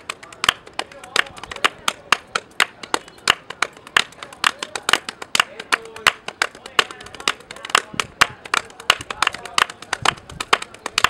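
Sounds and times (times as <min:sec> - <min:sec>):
rhythmic hand clapping: 0:00.0 - 0:11.0.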